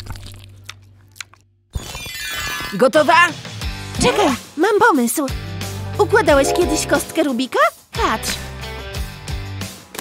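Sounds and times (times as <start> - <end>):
background music: 5.8 - 7.7.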